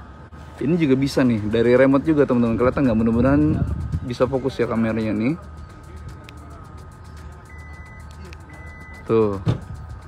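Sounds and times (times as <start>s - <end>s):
high warning beep: 7.4s - 9.3s.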